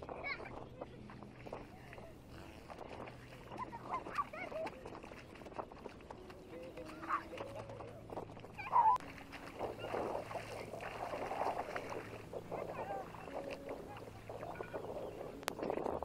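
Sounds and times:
water splashing: 0.0s - 16.0s
children calling and squealing: 3.4s - 5.0s, 6.4s - 10.6s, 12.4s - 15.4s.

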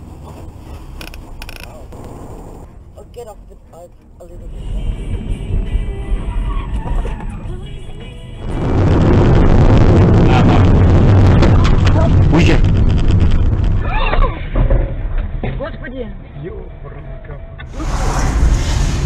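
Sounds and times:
car crash noise: 8.4s - 15.7s, 17.6s - 19.0s.

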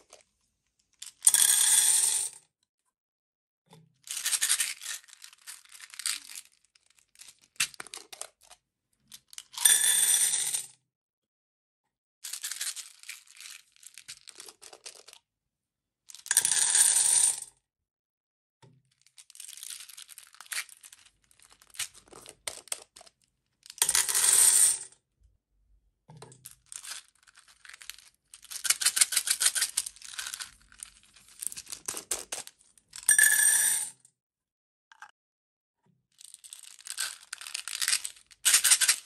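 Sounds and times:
beads rattling into metal tin: 26.6s - 33.8s, 36.2s - 39.0s.

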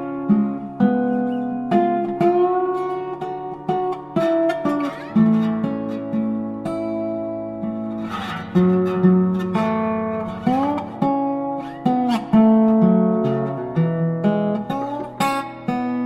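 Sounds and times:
acoustic guitar melody: 0.0s - 16.0s.

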